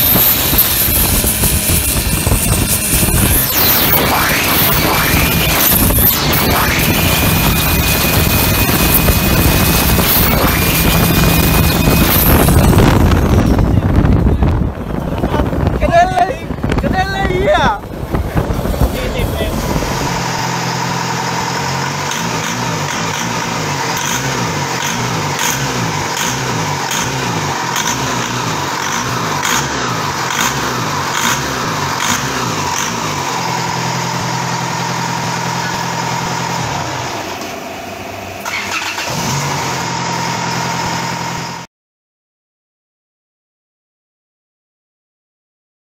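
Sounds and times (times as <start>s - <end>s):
wind rushing: 0.0s - 21.5s
thin high whine: 0.0s - 38.5s
diesel boat engine running: 0.0s - 41.7s
voices on a boat: 15.1s - 19.6s.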